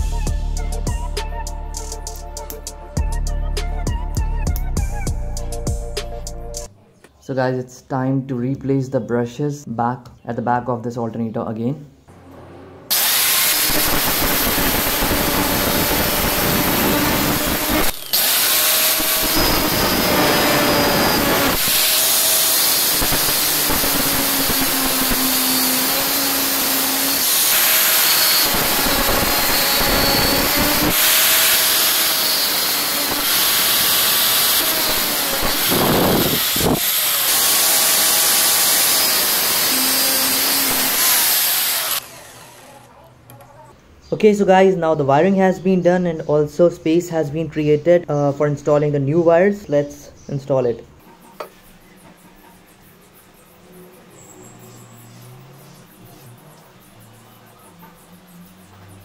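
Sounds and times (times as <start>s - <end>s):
angle grinder cutting metal: 12.9s - 43.0s.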